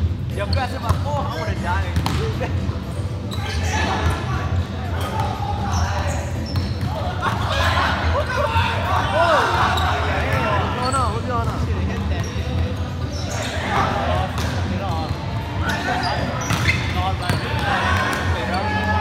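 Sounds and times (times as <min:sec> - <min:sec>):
volleyball slaps and thuds: 0:02.0 - 0:02.3
players shouting: 0:03.3 - 0:11.0, 0:13.2 - 0:14.5, 0:15.5 - 0:19.0.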